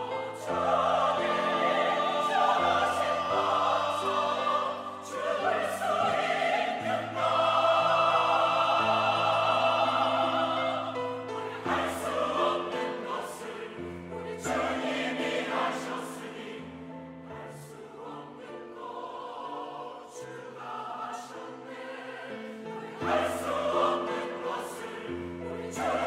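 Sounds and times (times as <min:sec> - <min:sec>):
mixed choir singing: 0:00.0 - 0:26.0.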